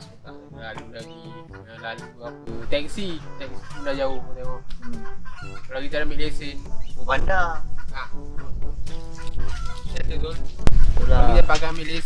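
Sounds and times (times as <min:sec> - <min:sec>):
chicken clucking: 0:03.6 - 0:05.7.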